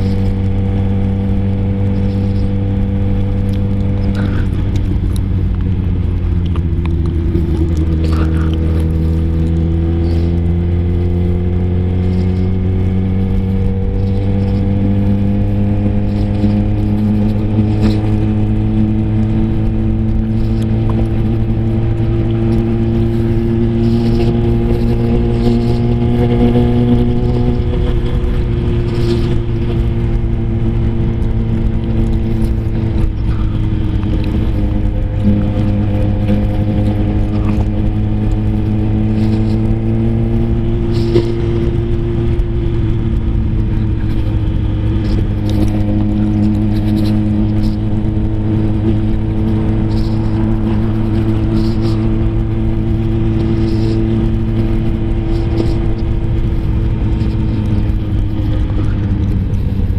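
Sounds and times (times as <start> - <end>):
motorcycle engine cruising: 0.0 - 59.9.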